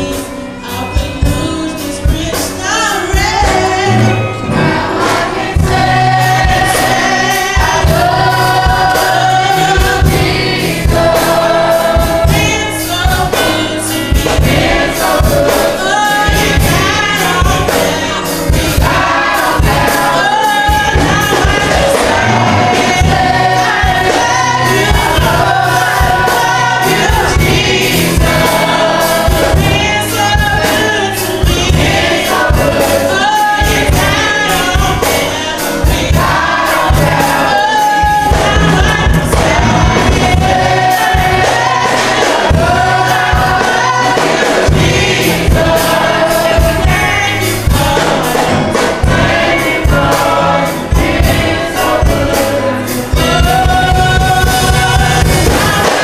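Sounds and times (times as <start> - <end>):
choir singing in harmony: 0.0 - 56.0
accompaniment with low beat: 3.2 - 56.0.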